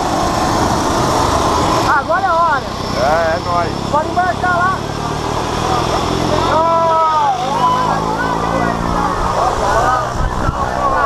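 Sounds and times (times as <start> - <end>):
propeller plane engine running: 0.0 - 6.5.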